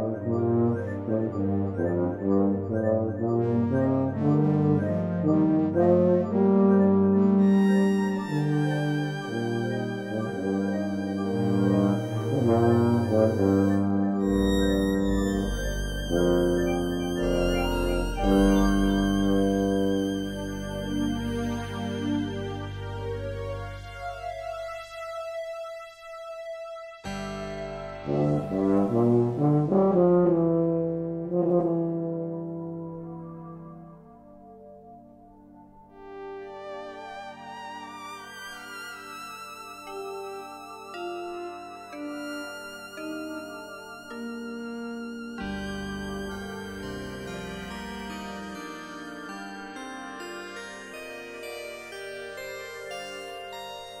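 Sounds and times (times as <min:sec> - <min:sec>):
tuba playing: 0:00.0 - 0:25.0, 0:27.1 - 0:34.4, 0:45.4 - 0:49.9
electronic accompaniment: 0:00.0 - 0:25.6, 0:27.1 - 0:54.0
synthesizer chord: 0:00.0 - 0:25.8, 0:27.0 - 0:54.0.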